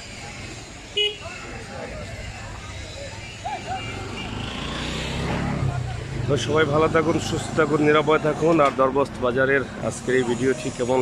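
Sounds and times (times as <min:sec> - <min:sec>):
people talking: 0:00.0 - 0:04.1, 0:05.2 - 0:11.0
vehicle horn toot: 0:01.0 - 0:01.3, 0:03.2 - 0:04.8.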